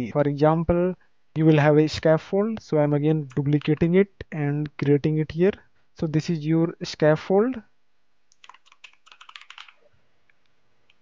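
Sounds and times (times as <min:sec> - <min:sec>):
computer keyboard typing: 0:08.3 - 0:09.8.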